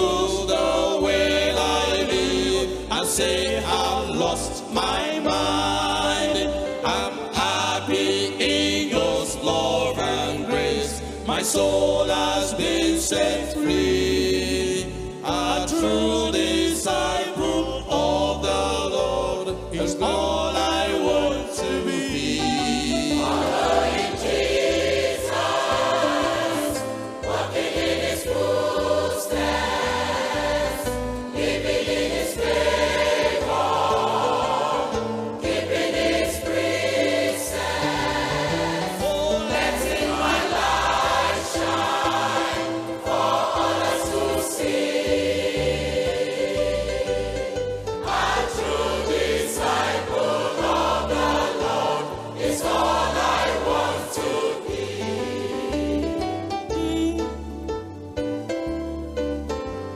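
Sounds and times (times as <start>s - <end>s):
choir singing a gospel hymn: 0.0s - 58.4s.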